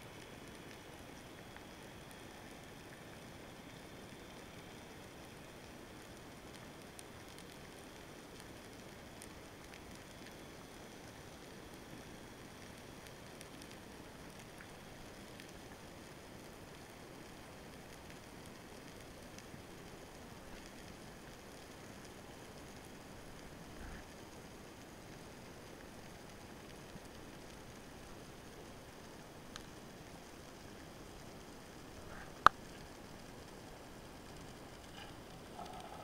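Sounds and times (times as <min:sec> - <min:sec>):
small underwater clicks and crackles: 0:00.0 - 0:36.0
underwater water hiss: 0:32.0 - 0:32.8.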